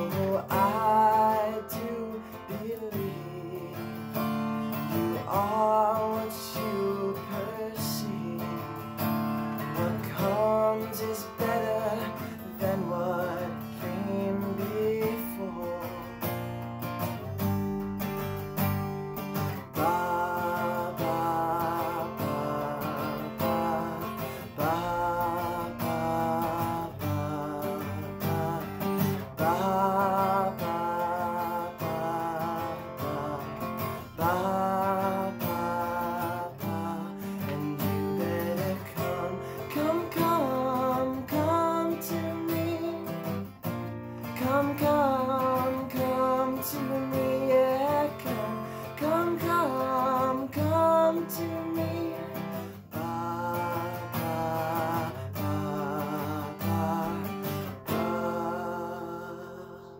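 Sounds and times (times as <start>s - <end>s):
acoustic guitar strumming: 0.0s - 59.9s
man singing: 0.0s - 59.9s.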